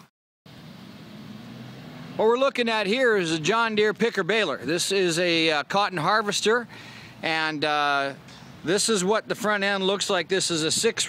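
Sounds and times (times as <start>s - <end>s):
outdoor background noise: 0.0s - 11.0s
low mechanical hum: 0.5s - 2.6s.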